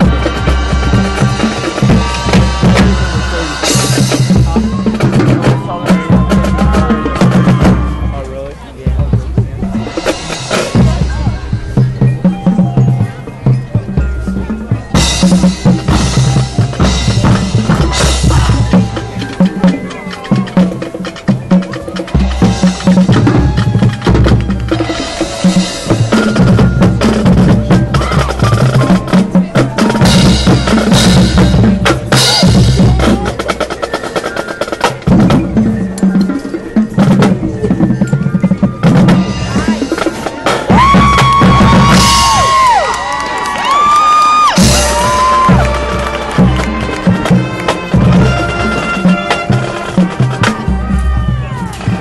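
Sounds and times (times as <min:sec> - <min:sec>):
band long held notes: 0:00.0 - 0:33.7, 0:44.4 - 0:52.0
marching band playing: 0:00.0 - 0:52.0.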